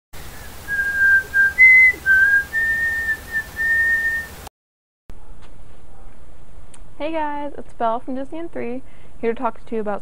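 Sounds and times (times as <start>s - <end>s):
person whistling a tune: 0.4s - 4.4s.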